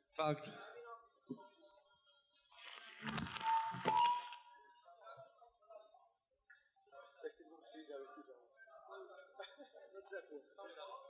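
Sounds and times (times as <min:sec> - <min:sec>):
noisy stage sound: 0:02.7 - 0:04.5.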